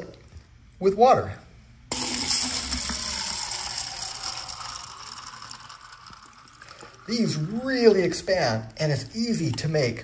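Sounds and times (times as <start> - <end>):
water pouring into plastic cup: 1.9 - 8.8.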